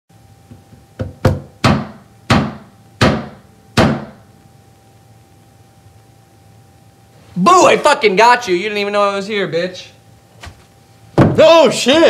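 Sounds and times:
knocks on a wooden desk: 0:00.5 - 0:04.2, 0:11.2 - 0:11.4.

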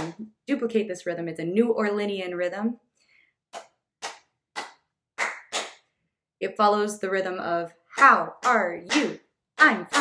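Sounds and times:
sharp hand claps: 0:03.5 - 0:05.9, 0:08.0 - 0:10.0.

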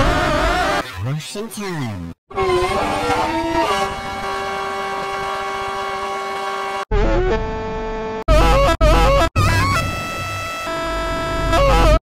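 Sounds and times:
held horn-like note: 0:02.4 - 0:06.8.

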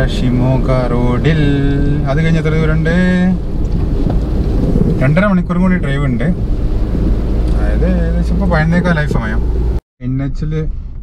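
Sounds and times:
car road and wind noise: 0:00.0 - 0:11.0.

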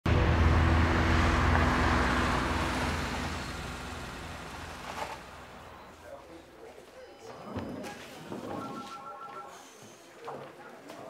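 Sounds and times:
car engine running: 0:00.1 - 0:06.0
tyre and road noise: 0:00.1 - 0:06.4.

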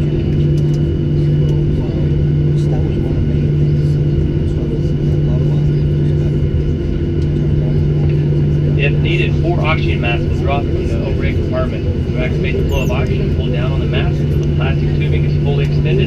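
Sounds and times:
aircraft cabin hum: 0:00.0 - 0:16.0
high-pitched whine: 0:00.0 - 0:16.0.

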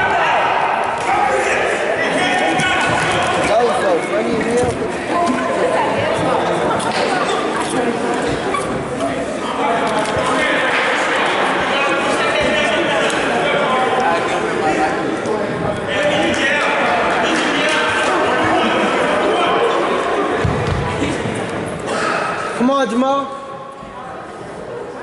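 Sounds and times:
indistinct voices echoing: 0:00.0 - 0:25.0.

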